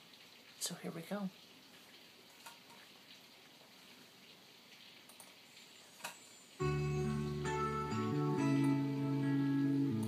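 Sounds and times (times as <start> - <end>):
instrumental track with sustained chords: 6.6 - 10.0.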